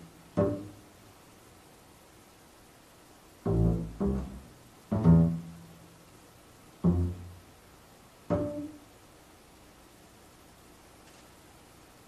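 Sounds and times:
double bass plucked notes: 0.0s - 0.8s, 3.4s - 6.0s, 6.8s - 7.5s, 8.2s - 8.8s.

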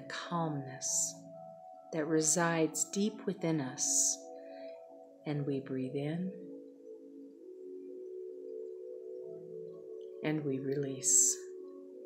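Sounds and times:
meditation music with chime tones: 0.0s - 12.0s.

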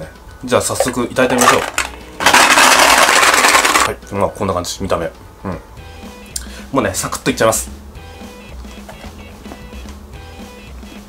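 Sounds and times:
candy rattling in metal tin: 0.8s - 4.0s.

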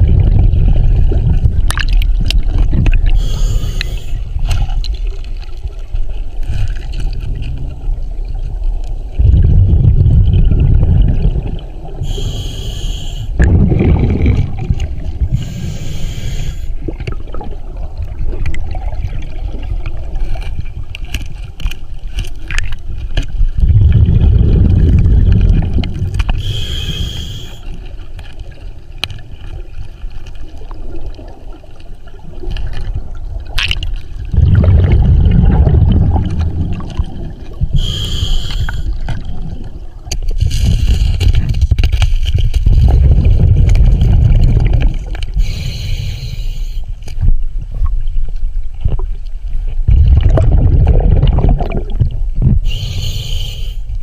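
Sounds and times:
exhaled bubbles rushing: 0.0s - 3.2s, 6.4s - 12.2s, 13.3s - 15.6s, 16.8s - 20.8s, 23.3s - 26.6s, 30.5s - 37.9s, 38.8s - 45.6s, 49.8s - 52.7s
diver inhaling through regulator: 3.1s - 4.3s, 12.0s - 14.5s, 15.3s - 16.8s, 26.3s - 27.8s, 37.7s - 39.2s, 45.3s - 46.9s, 52.6s - 54.0s.

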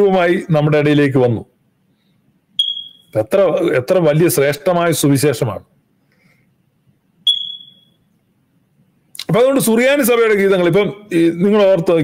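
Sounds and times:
high-pitched beep: 2.6s - 3.1s, 7.3s - 8.0s.

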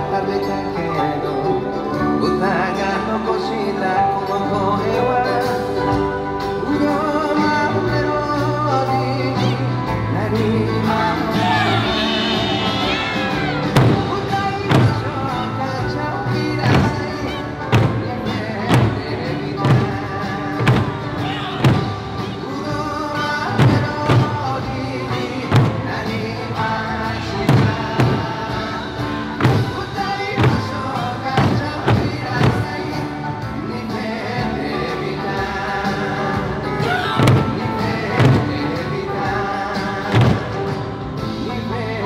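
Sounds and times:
folk backing music: 0.0s - 42.0s
barrel drums booming: 11.3s - 26.4s, 27.3s - 33.2s, 36.8s - 39.0s, 39.9s - 41.1s.

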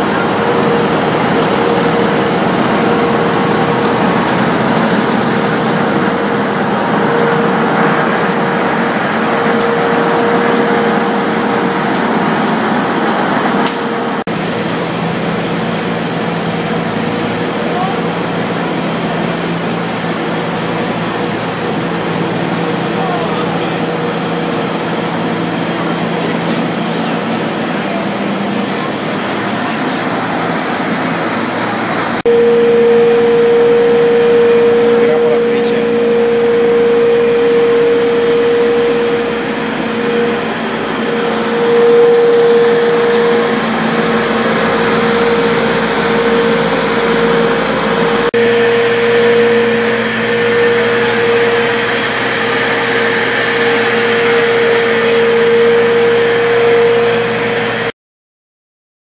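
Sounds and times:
machinery motor hum with whine: 0.0s - 57.9s.

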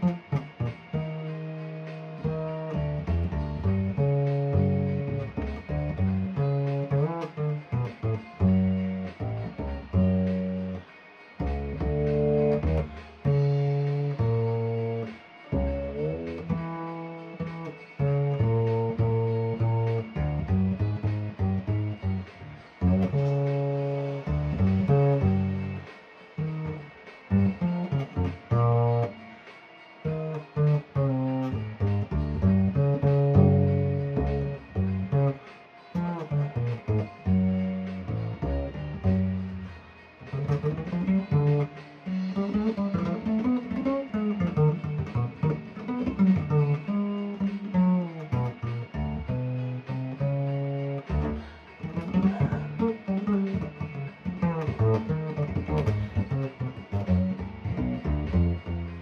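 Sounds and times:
double bass plucked notes: 0.0s - 29.2s, 30.0s - 59.0s.

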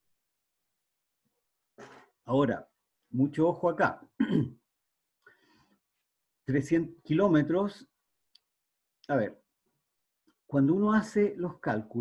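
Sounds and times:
man clearing his throat: 4.2s - 4.6s.

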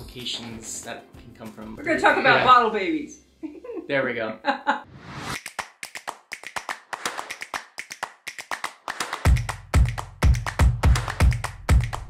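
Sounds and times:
rapid sharp clicks and snaps: 5.4s - 12.0s.

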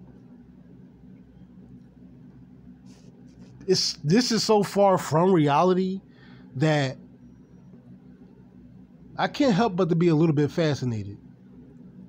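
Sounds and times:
low room hum with hiss: 0.0s - 12.0s.

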